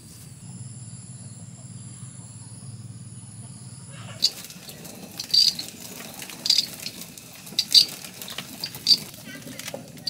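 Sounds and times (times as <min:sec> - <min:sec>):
grain cracking clicks: 0:04.2 - 0:10.0
stone mill grinding: 0:04.2 - 0:10.0.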